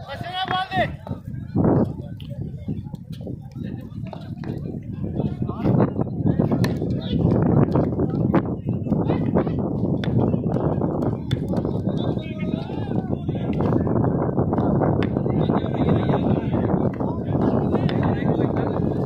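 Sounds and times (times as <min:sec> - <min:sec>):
men talking and calling: 0:00.0 - 0:19.0.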